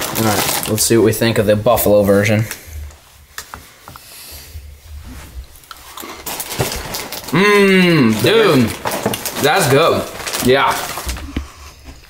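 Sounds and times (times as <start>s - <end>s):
crackers being chewed: 5.6s - 12.0s.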